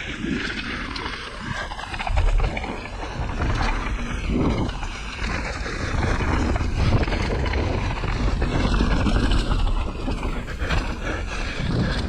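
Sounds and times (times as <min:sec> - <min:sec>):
bike rattling over bumps: 0:00.0 - 0:12.0
wind rushing over microphone: 0:00.0 - 0:12.0
tyres rolling on dirt: 0:00.4 - 0:12.0.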